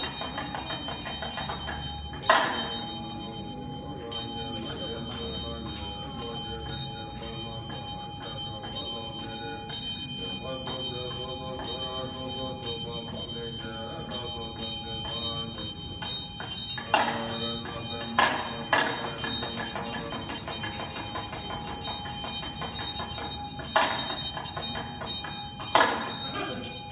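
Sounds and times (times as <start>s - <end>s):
bells ringing: 0.0s - 26.9s.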